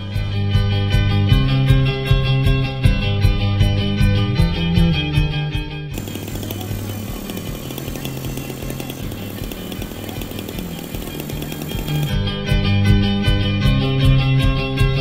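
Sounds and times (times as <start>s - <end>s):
rc helicopter motor whirring: 6.0s - 12.2s.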